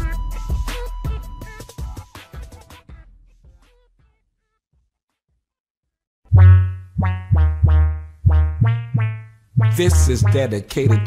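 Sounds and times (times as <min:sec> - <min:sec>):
deep buzzy synth bass note: 0:06.3 - 0:11.0.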